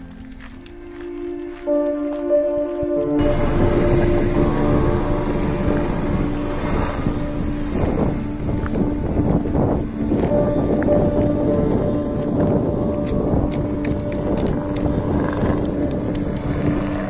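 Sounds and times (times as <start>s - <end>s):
helicopter rotor and engine rumble: 3.1s - 17.0s.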